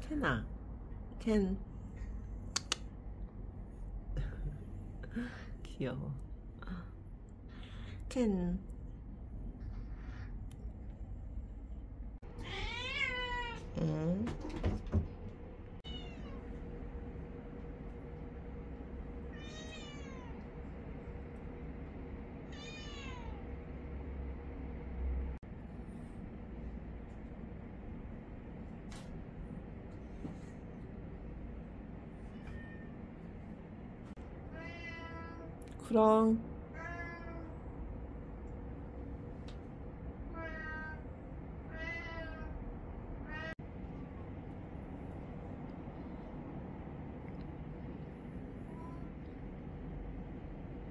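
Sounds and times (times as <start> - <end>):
cat meowing: 12.3 - 13.7, 15.8 - 16.5, 19.3 - 20.4, 22.5 - 23.4, 34.6 - 35.5, 36.8 - 37.5.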